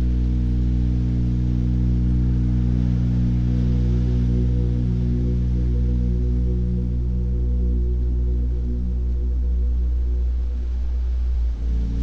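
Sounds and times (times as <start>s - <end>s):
ambient music with deep drone: 0.0s - 12.0s.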